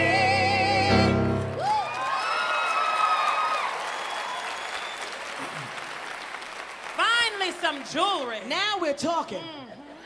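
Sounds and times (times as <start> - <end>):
audience applauding: 1.4 - 8.6.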